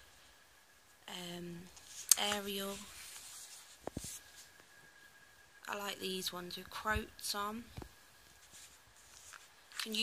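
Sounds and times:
paper rustling: 1.8s - 4.6s, 8.3s - 10.0s.

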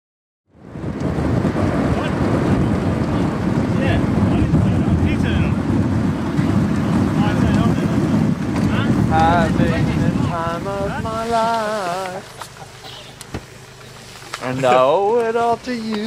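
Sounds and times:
wind buffeting microphone: 0.5s - 16.0s.

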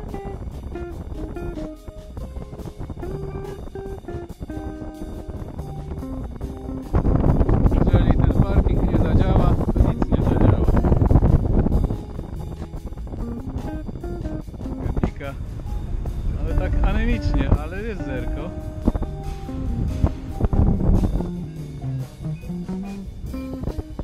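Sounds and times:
wind rushing on microphone: 0.0s - 21.2s
plucked background music: 0.0s - 24.0s.

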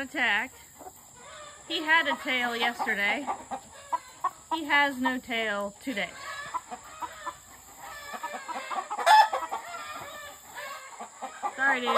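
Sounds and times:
chickens clucking: 0.0s - 11.9s
chicken squawk: 0.8s - 4.7s, 6.0s - 11.9s.

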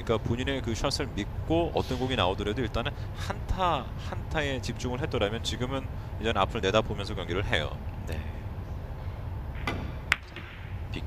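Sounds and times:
steady low hum: 0.0s - 11.0s
billiard balls clicking: 9.5s - 10.8s.

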